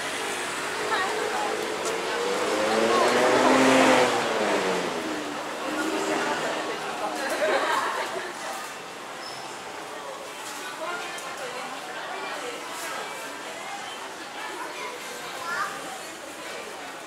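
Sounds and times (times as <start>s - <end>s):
motor vehicle passing: 0.0s - 8.2s
people talking: 0.0s - 17.0s.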